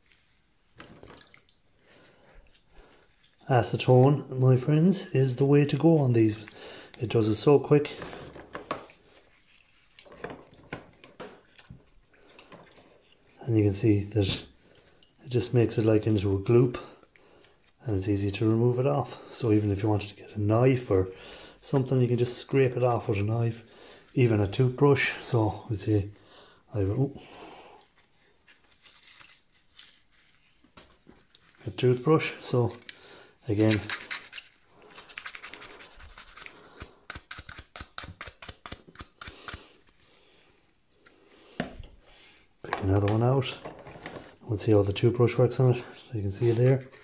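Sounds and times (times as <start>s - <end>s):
scratchy rubbing and scraping: 33.5s - 39.7s.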